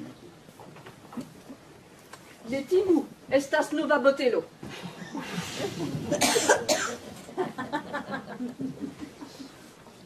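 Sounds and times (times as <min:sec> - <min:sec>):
person coughing: 0:06.1 - 0:07.0.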